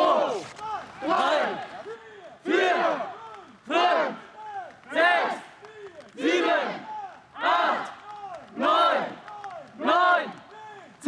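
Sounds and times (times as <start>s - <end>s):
group of people shouting in rhythm: 0.0s - 10.8s.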